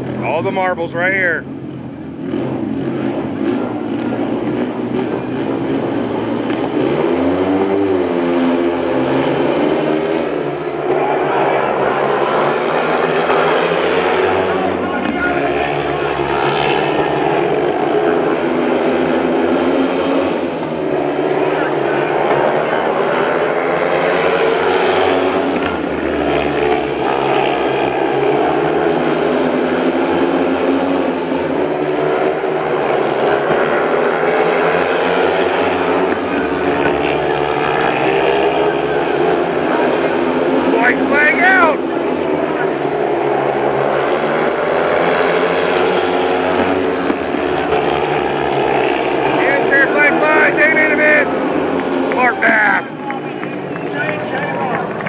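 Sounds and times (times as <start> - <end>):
motorbike engines racing: 0.0 - 55.0.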